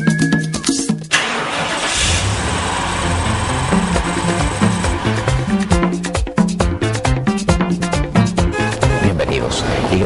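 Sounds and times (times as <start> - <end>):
theme music: 0.0 - 9.6
car engine starting and rumbling: 1.1 - 6.2.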